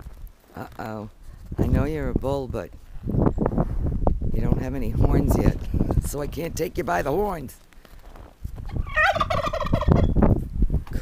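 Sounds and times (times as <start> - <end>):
turkey gobbling: 8.7 - 10.2.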